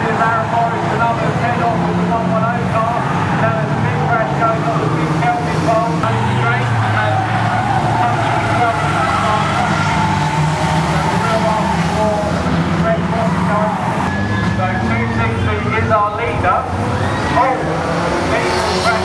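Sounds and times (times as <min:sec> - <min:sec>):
racing car engines droning: 0:00.0 - 0:19.0.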